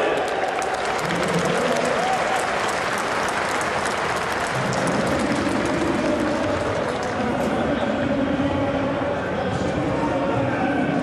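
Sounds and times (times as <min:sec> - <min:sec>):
crowd clapping: 0:00.0 - 0:07.7
crowd noise: 0:00.0 - 0:11.0.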